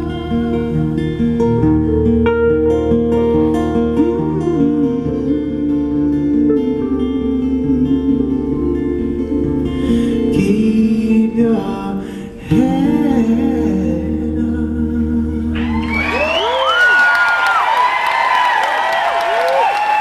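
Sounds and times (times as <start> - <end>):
man singing: 0.0 - 1.0, 3.8 - 15.9
acoustic guitar: 0.0 - 18.5
audience cheering and applauding: 15.6 - 20.0.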